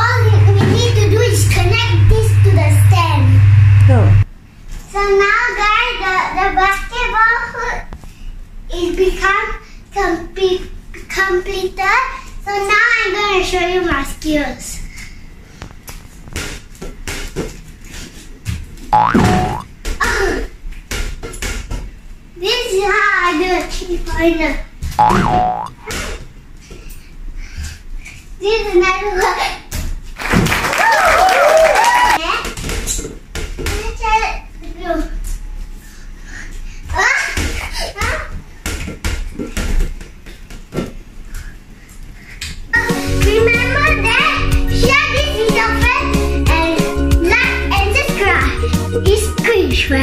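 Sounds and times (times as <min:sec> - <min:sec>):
toy ball bouncing on tiles: 0:19.0 - 0:19.6, 0:25.0 - 0:25.7.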